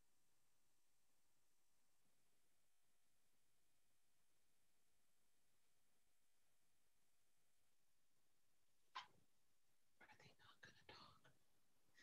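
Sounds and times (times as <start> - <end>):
faint whispered speech: 10.0 - 11.4.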